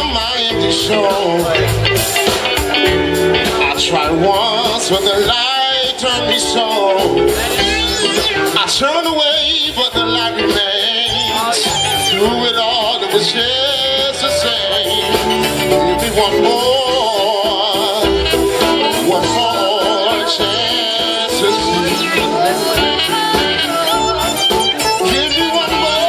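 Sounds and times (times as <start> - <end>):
drums: 0.0 - 26.0
electric guitar: 0.0 - 26.0
keyboards: 0.0 - 26.0
person singing: 2.8 - 26.0.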